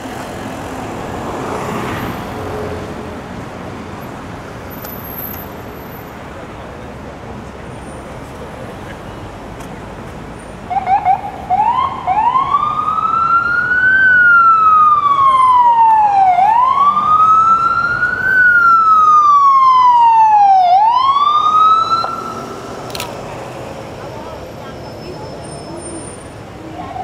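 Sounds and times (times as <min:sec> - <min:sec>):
emergency vehicle siren: 0:10.7 - 0:23.1.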